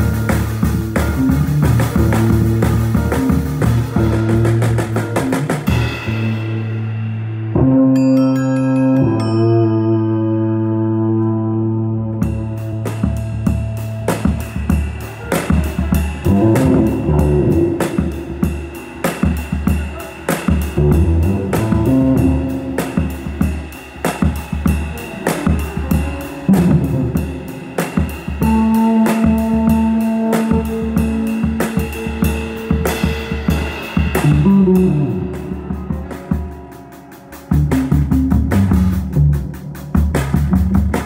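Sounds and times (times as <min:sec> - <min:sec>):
busy drum kit: 0:00.0 - 0:09.6, 0:12.1 - 0:41.0
held low bass notes: 0:00.0 - 0:41.0
jazz band playing: 0:00.0 - 0:41.0.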